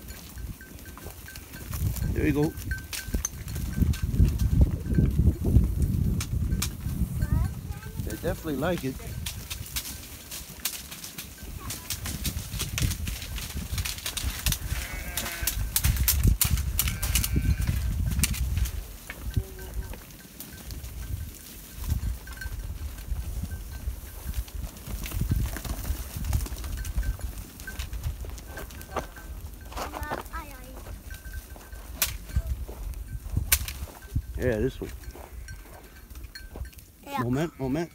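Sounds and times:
hooves on stony ground: 0.0s - 37.9s
animals chewing with crunching clicks: 8.8s - 34.2s
sheep bleating: 14.6s - 15.8s, 16.8s - 17.9s, 37.2s - 37.9s.

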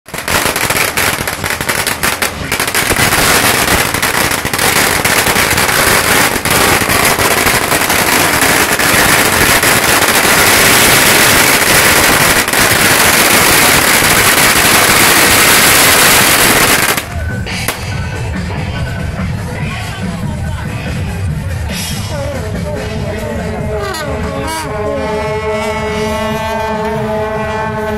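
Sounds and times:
firecrackers crackling: 0.0s - 18.6s.

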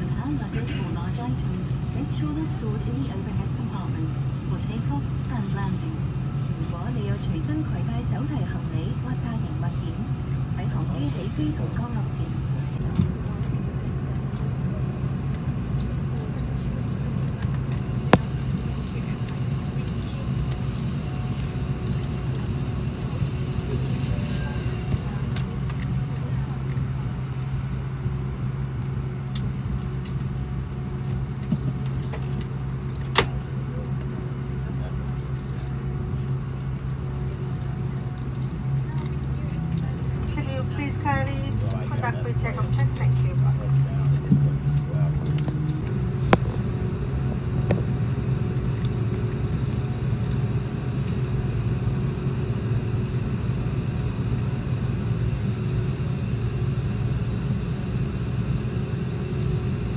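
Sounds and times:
voices: 0.0s - 30.2s, 33.4s - 49.6s
airliner cabin drone: 0.0s - 59.9s.

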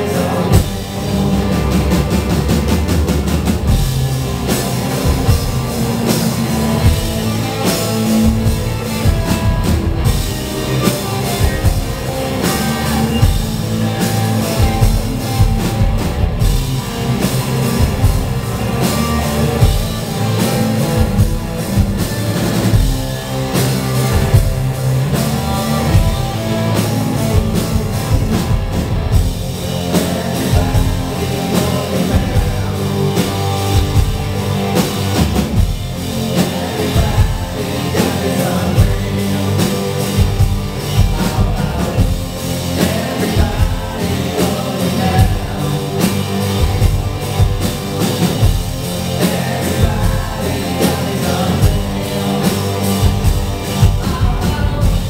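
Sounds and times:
drum kit beating: 0.0s - 55.0s
live rock band playing: 0.0s - 55.0s.

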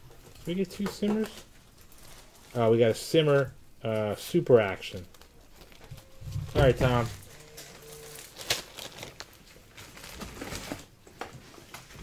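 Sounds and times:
cards rustling: 0.2s - 12.0s.

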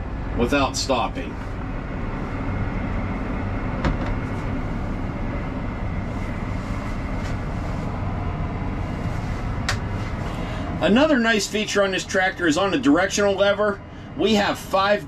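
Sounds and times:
tractor engine running: 0.0s - 15.0s.

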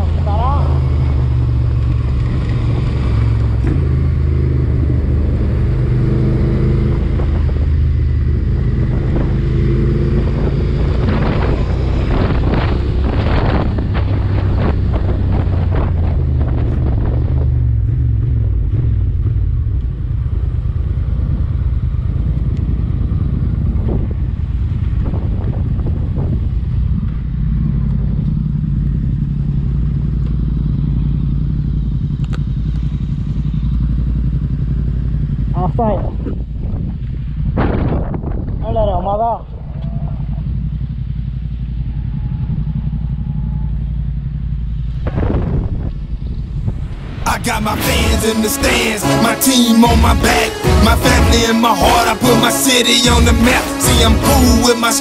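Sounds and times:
motorcycle engine running: 0.0s - 55.0s
wind buffeting microphone: 0.8s - 47.8s.

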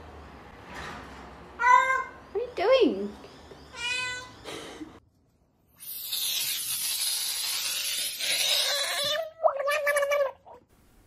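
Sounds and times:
cat meowing: 8.6s - 10.6s.

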